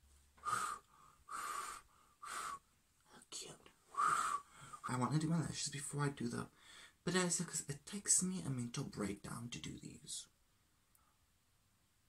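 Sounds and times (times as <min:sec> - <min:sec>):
person blowing breathy puffs: 0:00.4 - 0:02.6, 0:03.9 - 0:04.9.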